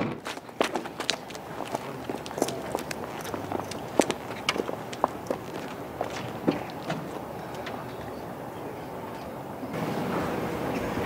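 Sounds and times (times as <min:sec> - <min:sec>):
footsteps on paved surface: 0:00.0 - 0:08.2.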